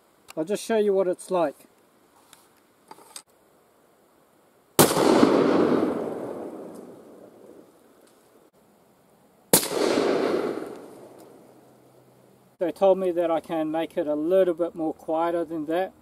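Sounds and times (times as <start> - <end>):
rifle shots with rolling echo: 4.8 - 7.6, 9.5 - 11.6.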